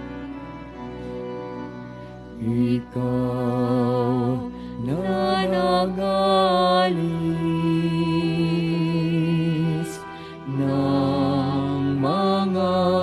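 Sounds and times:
person singing with vibrato: 0:02.3 - 0:13.0.

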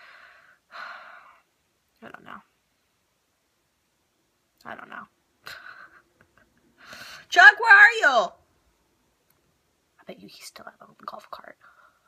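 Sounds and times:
woman breathing: 0:00.0 - 0:01.6, 0:06.8 - 0:07.3, 0:11.6 - 0:12.0.

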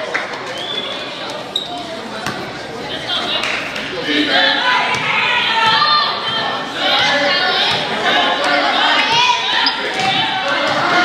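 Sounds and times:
murmur of crowd voices: 0:00.0 - 0:11.0.

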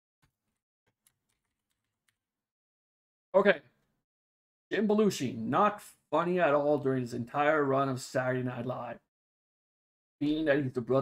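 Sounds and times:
faint keyboard typing: 0:00.5 - 0:02.2.

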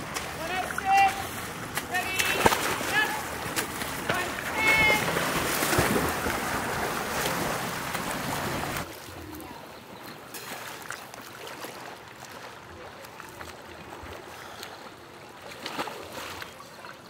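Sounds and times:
swimmer splashing: 0:00.0 - 0:17.0.

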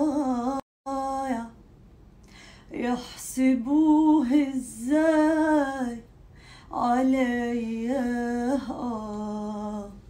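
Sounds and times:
woman singing unaccompanied: 0:00.0 - 0:01.6, 0:02.7 - 0:06.1, 0:06.7 - 0:10.0.

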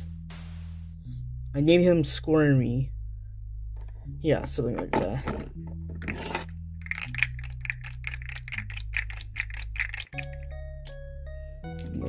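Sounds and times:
bass line with ticking beat: 0:00.0 - 0:12.0.

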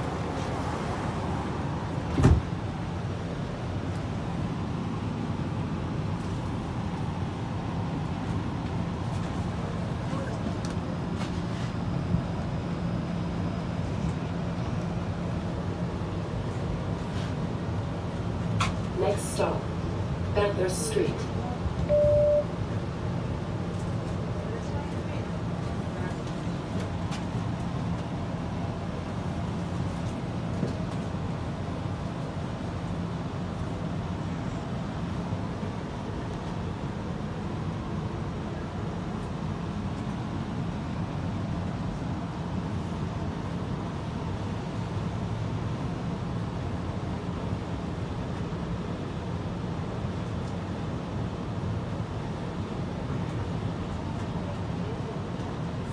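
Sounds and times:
road traffic outside: 0:00.0 - 0:55.9
streetcar interior hum: 0:00.0 - 0:55.9.

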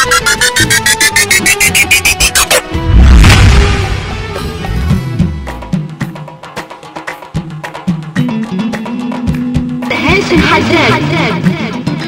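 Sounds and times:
instrumental backing music: 0:00.0 - 0:12.0.

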